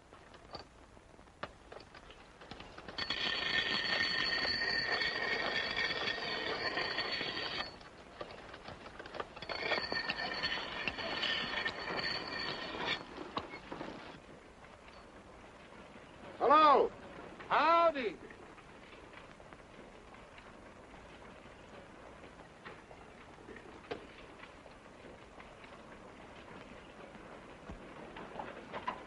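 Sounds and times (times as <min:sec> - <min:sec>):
axe blade grinding on grindstone: 0:03.0 - 0:07.8, 0:09.4 - 0:13.7.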